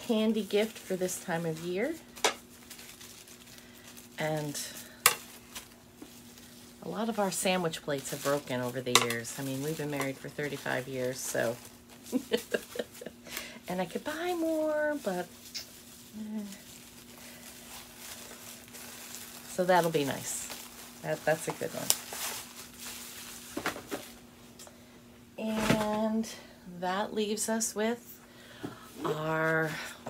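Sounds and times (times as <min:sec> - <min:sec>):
steady low hum: 0:00.0 - 0:30.0
soft handling sounds: 0:13.9 - 0:24.2.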